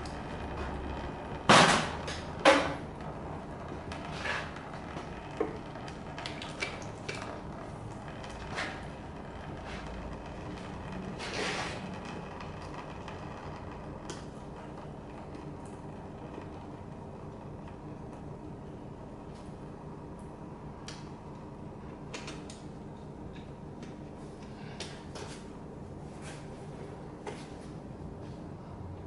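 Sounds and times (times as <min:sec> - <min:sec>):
low hum: 0:00.0 - 0:24.8
metal scrape: 0:11.2 - 0:11.9.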